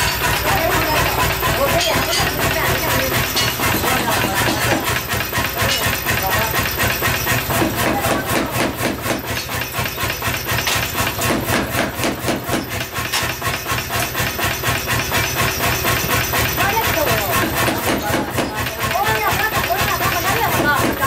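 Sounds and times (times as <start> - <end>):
power hammer pounding steel: 0.0 - 21.0.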